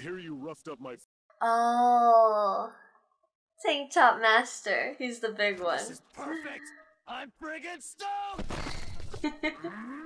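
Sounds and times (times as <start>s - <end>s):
voices: 4.4s - 8.4s
man shouting: 6.3s - 8.4s.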